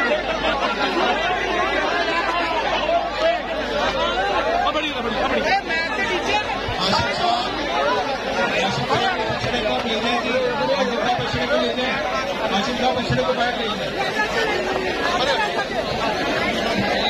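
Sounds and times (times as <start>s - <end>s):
crowd of men talking: 0.0s - 17.0s.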